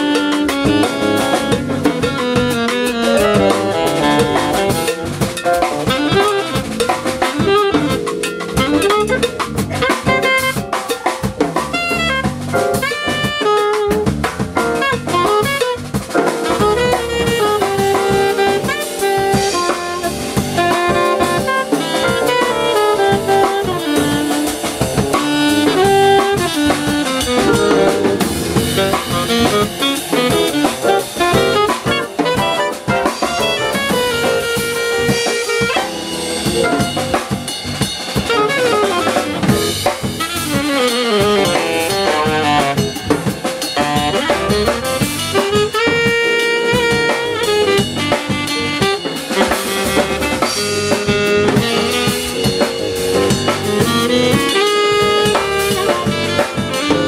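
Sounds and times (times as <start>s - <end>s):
alto saxophone melody: 0.0s - 57.0s
drum kit: 0.0s - 57.0s
electric bass: 0.0s - 57.0s
electric keyboard: 0.0s - 57.0s.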